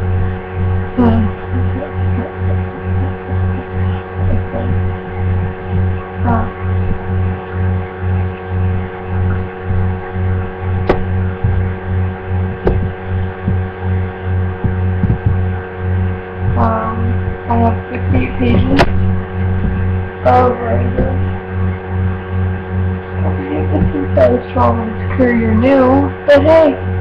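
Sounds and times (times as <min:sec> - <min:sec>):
pulsing electrical hum: 0:00.0 - 0:27.0.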